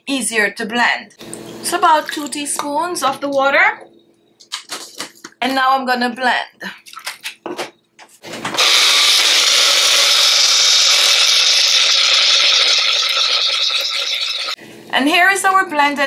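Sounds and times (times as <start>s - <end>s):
small blender motor running: 8.6s - 14.6s.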